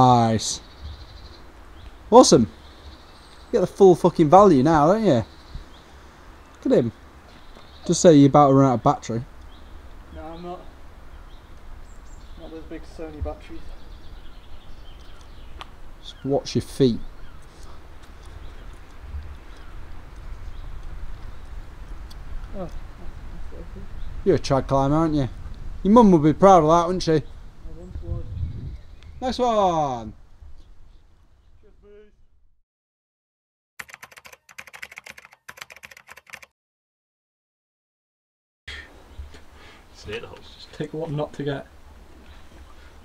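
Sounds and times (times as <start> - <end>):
faint bird calls: 17.0 - 19.9
steady low rumble: 17.1 - 29.3
keystroke clicks: 33.8 - 36.5.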